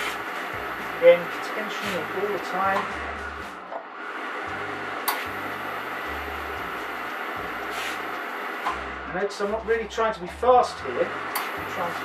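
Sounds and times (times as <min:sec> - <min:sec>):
steam iron hissing: 0:00.0 - 0:03.2, 0:05.1 - 0:08.8
low hum: 0:00.0 - 0:12.0
sharp click: 0:11.4 - 0:11.6.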